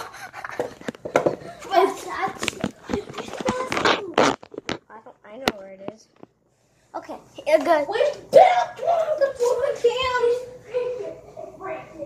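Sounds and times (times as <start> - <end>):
children's voices: 1.5 - 4.3, 7.0 - 12.0.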